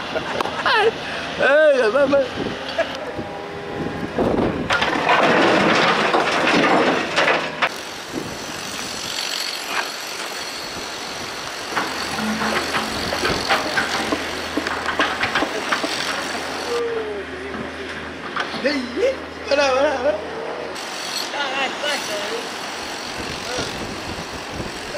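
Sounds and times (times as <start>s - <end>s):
rubble scraping and clattering: 4.7s - 7.7s, 11.8s - 16.6s.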